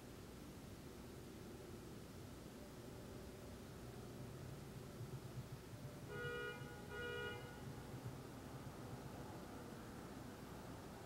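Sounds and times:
two-tone car horn honks: 6.1 - 7.8.

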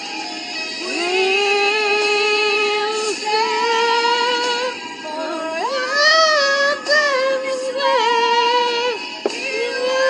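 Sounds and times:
background music: 0.0 - 10.0
high singing voice: 0.8 - 10.0.

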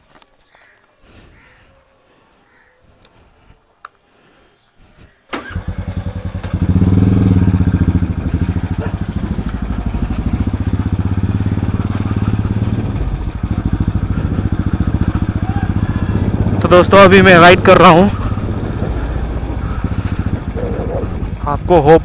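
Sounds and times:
motorcycle engine starting and running: 5.3 - 22.0.

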